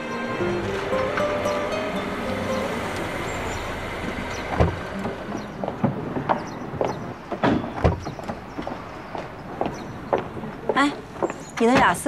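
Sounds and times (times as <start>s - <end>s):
car engine and tyres rumbling: 0.0s - 11.8s.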